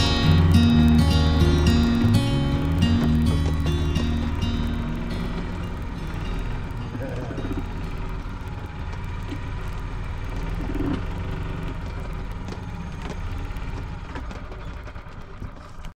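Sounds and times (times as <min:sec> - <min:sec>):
golf cart engine drone: 0:00.0 - 0:15.9.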